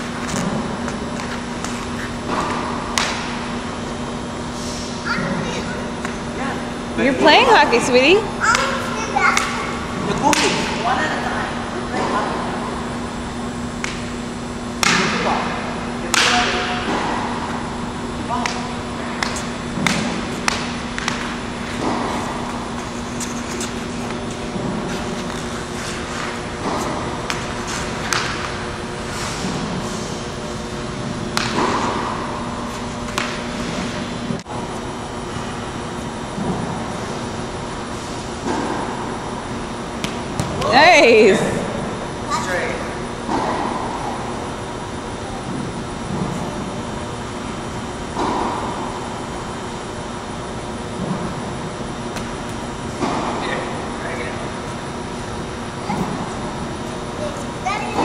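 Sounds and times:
steady hum: 0.0s - 58.0s
hockey sticks knocking a ball: 0.2s - 3.4s, 19.2s - 28.6s, 31.4s - 32.1s, 33.1s - 33.4s.

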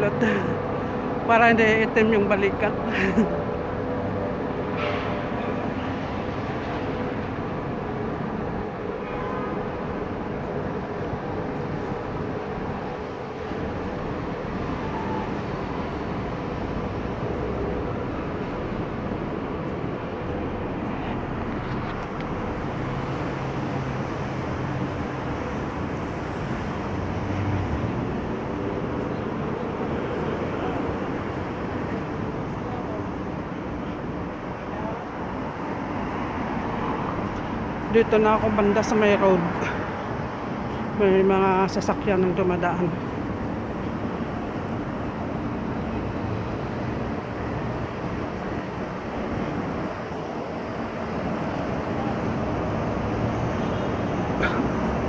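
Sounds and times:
traffic rumble: 0.0s - 55.0s.

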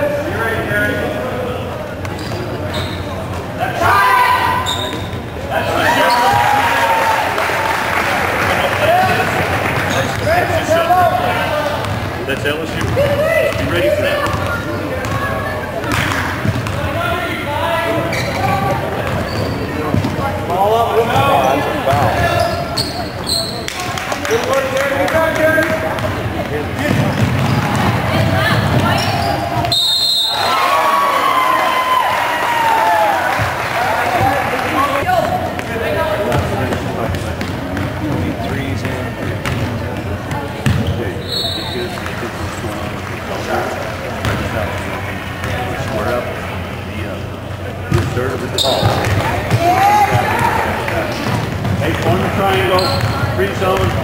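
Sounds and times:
voices of players and spectators: 0.0s - 54.0s
basketball bouncing on hardwood floor: 15.9s - 16.8s, 40.6s - 40.9s.

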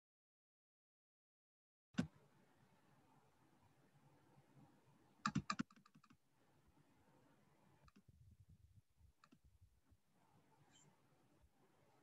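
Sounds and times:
keyboard keystrokes clicking: 5.2s - 6.2s.

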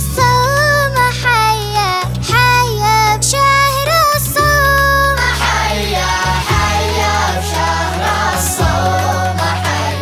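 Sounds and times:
child singing: 0.0s - 10.0s
music backing with low bass: 0.0s - 10.0s.

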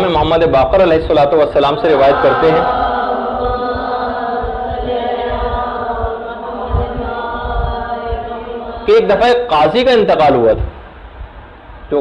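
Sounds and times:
sustained vocal tone: 1.9s - 9.5s.

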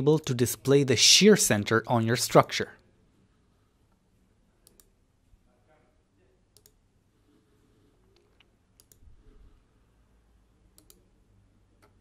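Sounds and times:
computer mouse clicks: 4.6s - 5.0s, 6.6s - 6.8s, 8.1s - 9.1s, 10.7s - 11.1s.

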